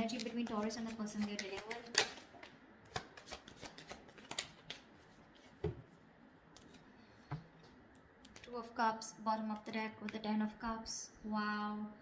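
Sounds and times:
cards being shuffled: 0.0s - 2.3s, 2.9s - 5.6s.

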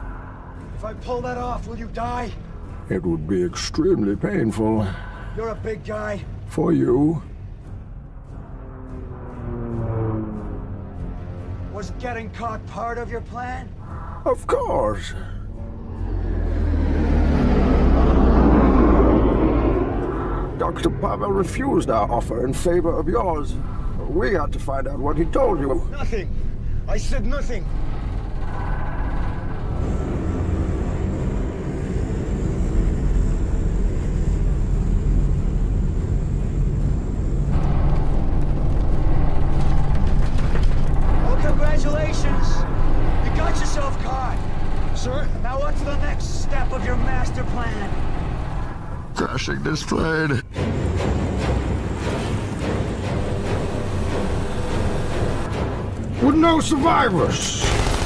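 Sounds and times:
aircraft engines droning: 0.0s - 58.0s
low film score music: 0.0s - 58.0s.

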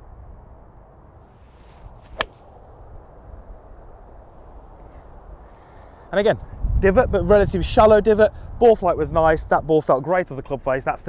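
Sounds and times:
golf club swishing: 1.3s - 2.7s
golf club striking ball: 1.4s - 2.7s.

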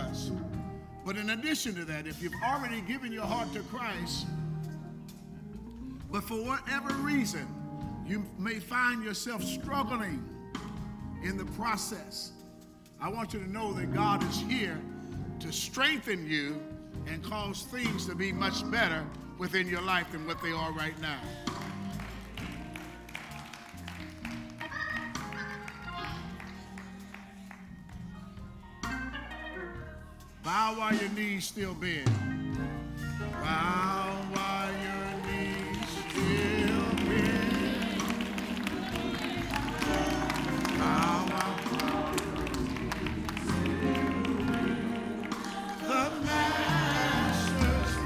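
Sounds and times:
church band playing quietly: 0.0s - 48.0s
sustained keyboard chords: 0.0s - 48.0s
bass notes: 16.6s - 48.0s.

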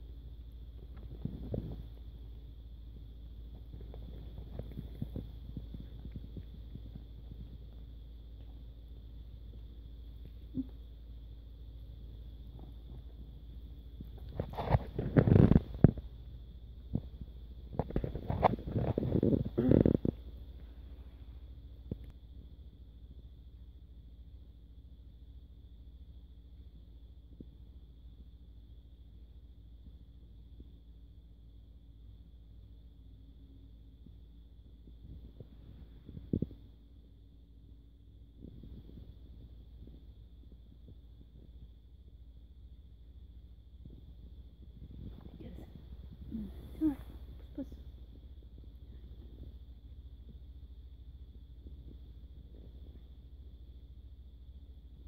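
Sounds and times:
low steady rumble: 0.0s - 55.0s.

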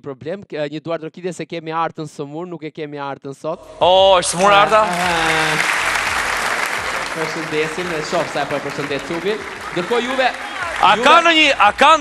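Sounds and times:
man speaking: 0.0s - 5.7s, 7.1s - 12.0s
audience applauding: 4.4s - 12.0s.

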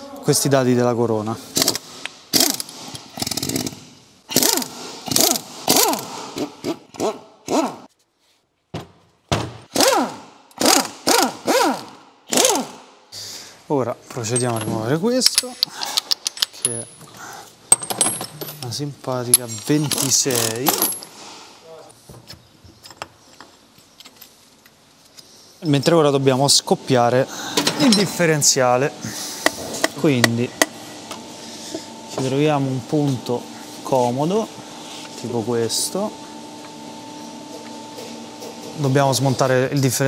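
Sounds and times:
impact wrench bursts: 1.6s - 7.9s, 9.7s - 12.9s
metallic clicks and clinks: 14.3s - 17.0s.

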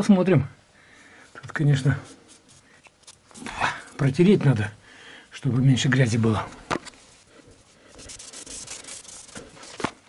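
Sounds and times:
cloth rubbing on metal bar: 1.6s - 4.1s, 7.0s - 9.9s.

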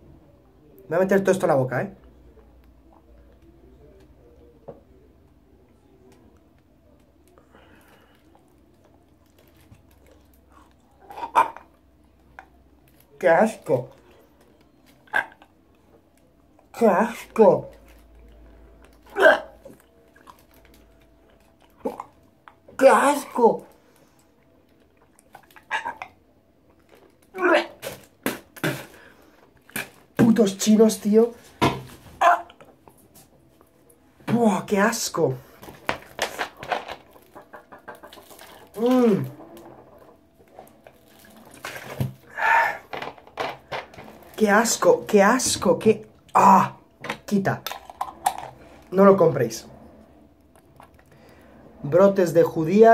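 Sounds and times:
man retching grunt: 19.0s - 19.7s, 27.3s - 29.0s
man spitting: 27.5s - 29.1s.

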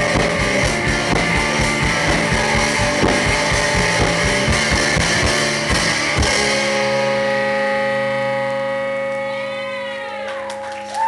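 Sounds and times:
drums: 0.0s - 11.0s
electric guitars ringing chord: 0.0s - 11.0s.

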